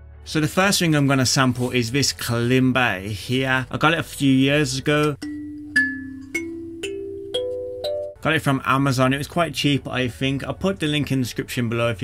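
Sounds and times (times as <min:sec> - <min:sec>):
kalimba notes plucked: 0:05.2 - 0:08.2.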